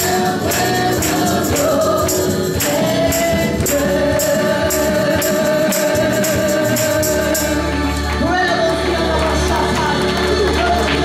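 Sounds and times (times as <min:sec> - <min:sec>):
gospel trio singing: 0:00.0 - 0:11.0
musical accompaniment with steady beat: 0:00.0 - 0:11.0.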